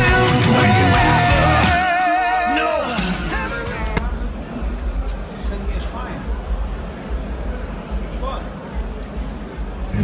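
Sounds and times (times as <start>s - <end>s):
man singing rock: 0.0s - 4.0s.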